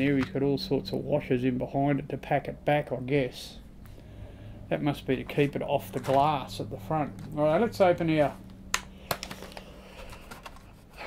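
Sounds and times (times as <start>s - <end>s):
plastic crackling: 8.4s - 10.9s.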